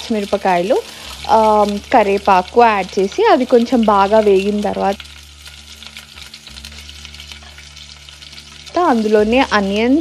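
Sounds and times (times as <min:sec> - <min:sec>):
oil sizzling in a pot: 0:00.0 - 0:10.0.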